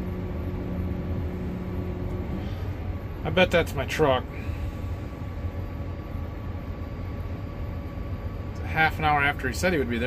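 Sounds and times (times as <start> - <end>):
faint even hum: 0.0 - 9.5
combine harvester drone: 0.0 - 10.0.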